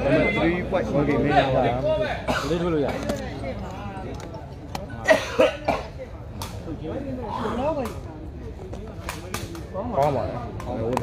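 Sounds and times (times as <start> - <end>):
person coughing: 5.0 - 5.9.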